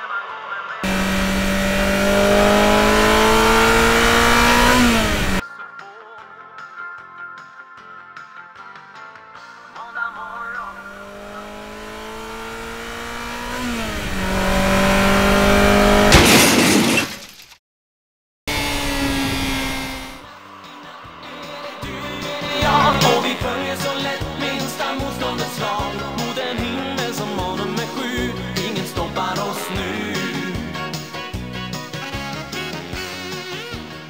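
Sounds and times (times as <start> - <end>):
engine revving up: 0.8 - 5.4, 10.6 - 16.2, 18.5 - 20.3, 21.8 - 31.3
spaceship engine whine: 18.5 - 20.3, 21.8 - 23.9
loud rushing blast: 22.4 - 24.0.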